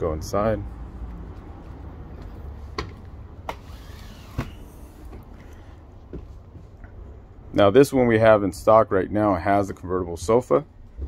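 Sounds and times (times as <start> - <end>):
road traffic rumble: 0.0 - 11.0
footsteps on metal steps: 6.0 - 6.8.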